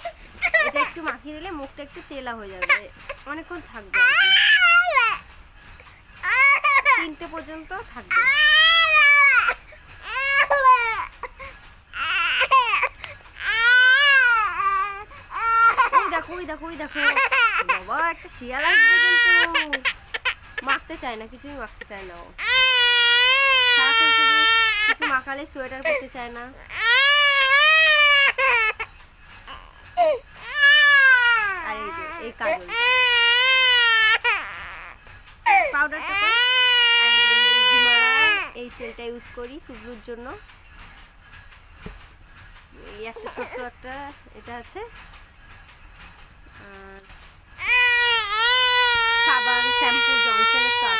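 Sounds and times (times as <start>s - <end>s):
baby crying: 4.0s - 5.2s, 6.2s - 7.1s, 8.0s - 16.3s, 16.9s - 17.8s, 18.6s - 20.8s, 22.4s - 25.2s, 26.6s - 28.8s, 29.5s - 38.6s, 47.6s - 50.9s.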